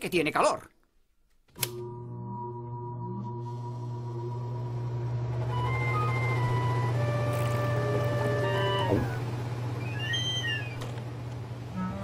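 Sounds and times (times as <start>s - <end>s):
air conditioner humming: 3.7s - 12.0s
high squeak-like tone: 9.8s - 10.9s.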